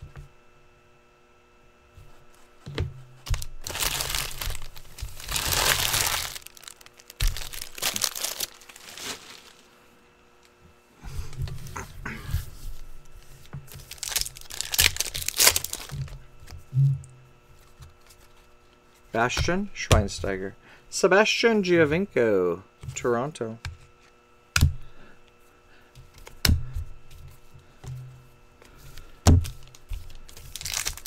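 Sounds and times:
foil wrappers crinkling: 3.2 - 9.8, 13.7 - 16.2, 28.9 - 31.0
cards being handled: 28.6 - 31.0.

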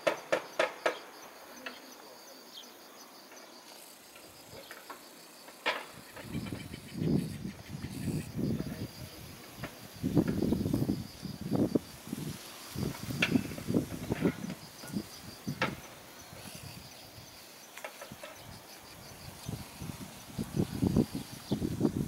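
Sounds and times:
insects chirping: 0.0 - 22.0.

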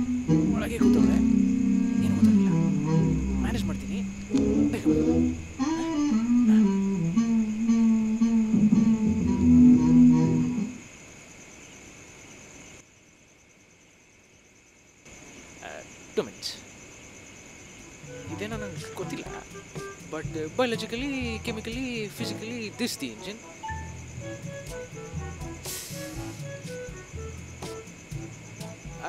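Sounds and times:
person humming a tune: 0.0 - 10.8
insects chirring: 0.0 - 29.0.

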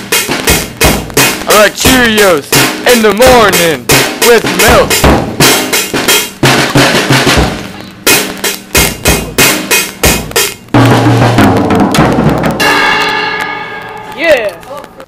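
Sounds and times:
drum kit beat: 0.0 - 15.0.

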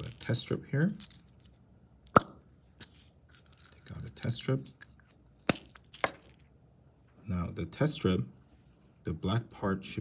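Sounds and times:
test strips rattling: 0.0 - 1.6, 2.8 - 6.5.

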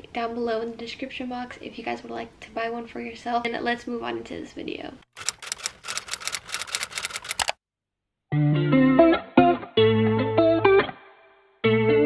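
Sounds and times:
keyboard key clicks: 5.2 - 7.6.

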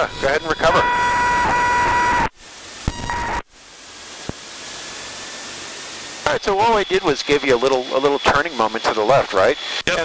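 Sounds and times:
cockpit intercom hiss: 0.0 - 3.4
thin high whine: 0.0 - 3.5, 4.2 - 10.0.

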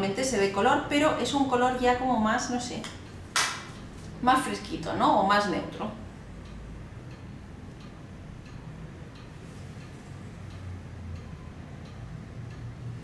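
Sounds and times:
low steady hum: 0.0 - 13.0
faint regular ticking: 2.6 - 13.0.

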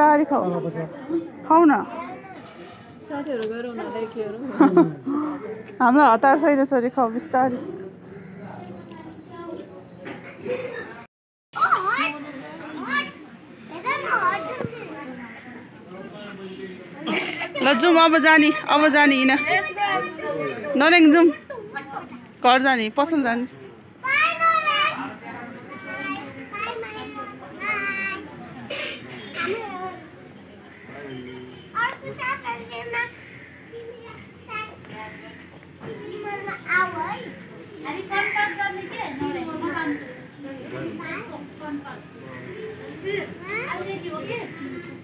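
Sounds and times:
children calling out and chattering: 0.0 - 45.0
children's excited exclamations: 17.6 - 22.1, 24.0 - 28.3.

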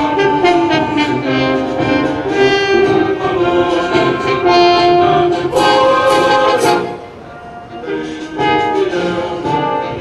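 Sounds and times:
orchestral brass and strings: 0.0 - 10.0.

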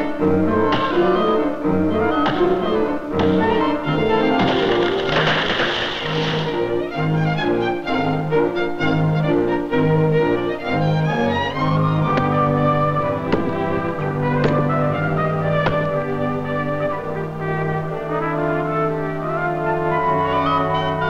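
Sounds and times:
orchestral music with strings and brass: 0.0 - 21.0.

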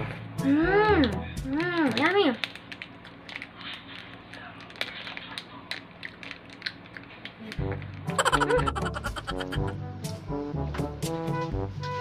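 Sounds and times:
plastic wrapper crinkling: 1.7 - 7.9.

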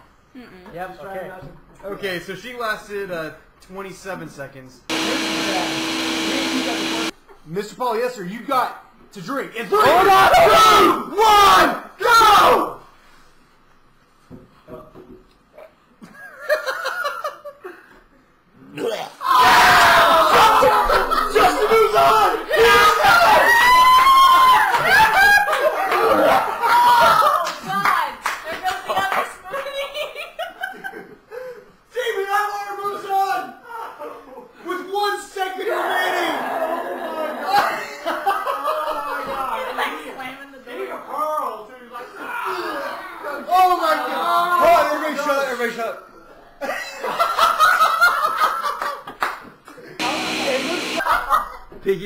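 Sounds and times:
people laughing: 16.0 - 17.8, 20.0 - 22.2, 29.5 - 31.6, 36.2 - 39.5, 46.6 - 49.2, 49.8 - 51.7
people laughing and exclaiming: 18.8 - 31.6, 35.6 - 40.0
people shouting and cheering: 19.0 - 27.5.

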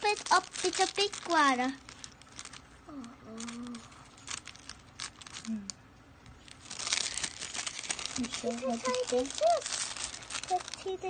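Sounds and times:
wrapping tearing: 0.0 - 5.7, 6.4 - 11.0
plastic and foil wrapping crinkling: 0.0 - 11.0.

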